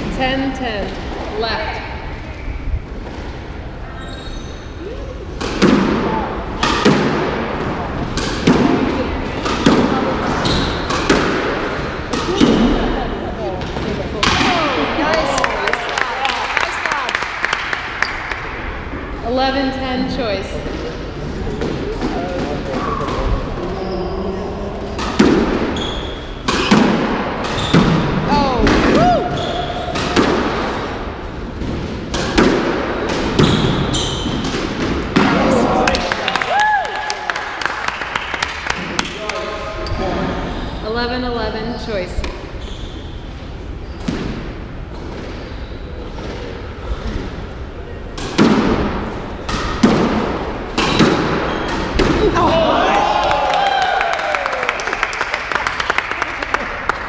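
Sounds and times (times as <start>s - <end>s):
squash ball hitting racket and walls: 5.3s - 15.2s, 21.4s - 23.8s, 24.7s - 36.2s, 42.2s - 53.2s.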